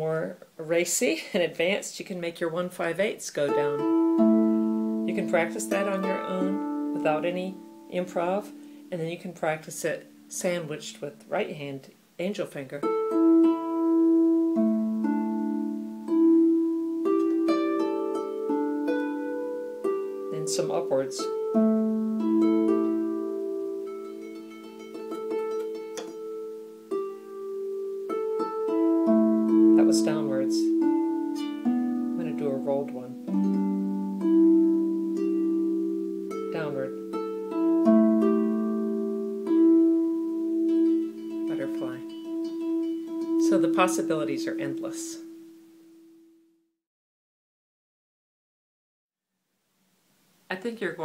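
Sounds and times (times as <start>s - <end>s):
harp plucked notes and chords: 3.4s - 11.5s, 12.8s - 45.3s.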